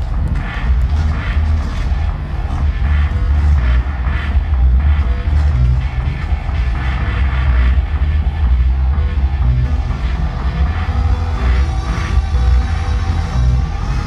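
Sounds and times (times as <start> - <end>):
deep steady bass: 0.0 - 14.0
live electronic music: 0.0 - 14.0.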